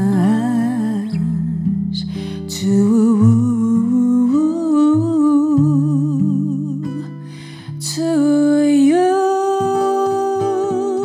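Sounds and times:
woman singing jazz with vibrato: 0.0s - 1.6s, 2.5s - 7.2s, 7.8s - 11.0s
soft acoustic guitar chords: 0.0s - 11.0s.

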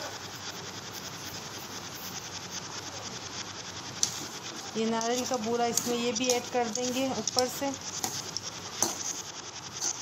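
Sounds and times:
spatula scraping a pan: 4.9s - 10.0s.

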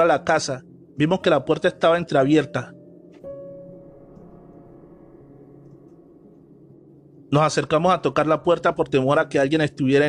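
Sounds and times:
low steady drone: 0.0s - 10.0s.

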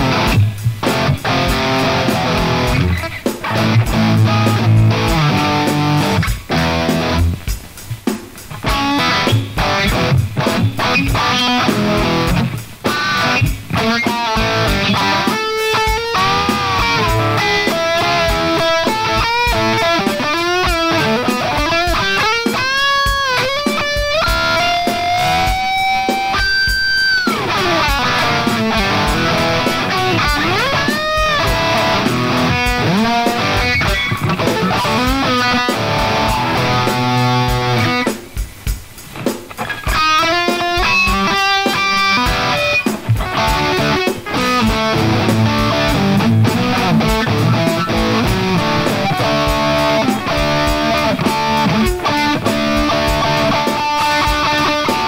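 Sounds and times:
electric guitar blues-rock lead: 0.0s - 55.0s.

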